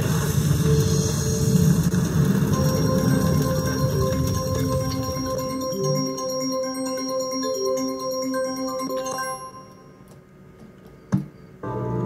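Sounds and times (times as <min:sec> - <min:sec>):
electronic organ-like chords: 0:00.6 - 0:10.2
slot machine click: 0:02.5 - 0:10.1.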